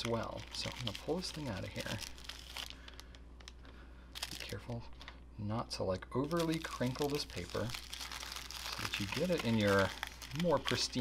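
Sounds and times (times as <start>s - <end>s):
tissue paper crinkling: 0.0s - 3.2s, 6.3s - 11.0s.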